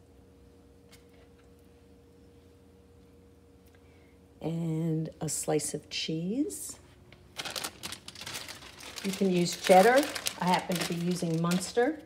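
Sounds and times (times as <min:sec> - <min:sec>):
plastic wrapping crinkling: 0:07.2 - 0:12.0.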